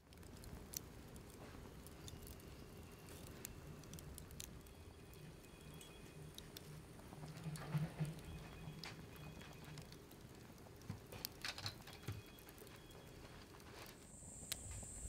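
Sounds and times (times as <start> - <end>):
charcoal fire crackling: 0.0 - 15.0.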